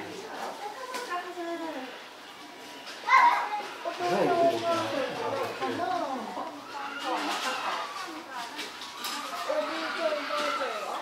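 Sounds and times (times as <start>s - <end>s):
children talking and calling out: 0.1s - 11.0s.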